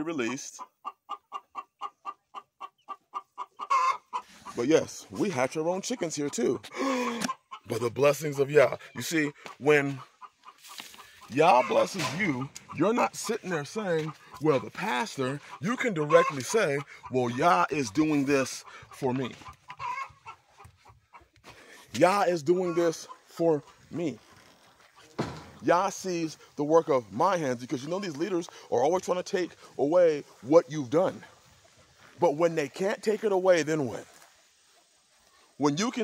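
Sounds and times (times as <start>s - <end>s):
chickens clucking: 0.0s - 36.0s.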